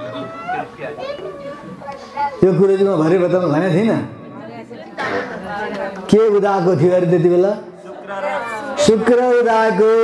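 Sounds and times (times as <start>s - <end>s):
quiet high-pitched voices talking: 0.0s - 2.6s.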